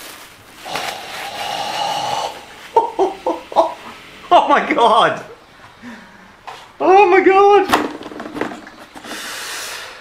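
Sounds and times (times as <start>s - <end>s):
man's breathy exhale: 9.1s - 10.0s.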